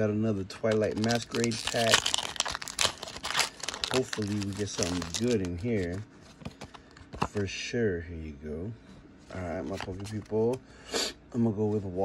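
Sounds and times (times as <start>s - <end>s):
plastic wrapper crinkling: 0.7s - 7.3s.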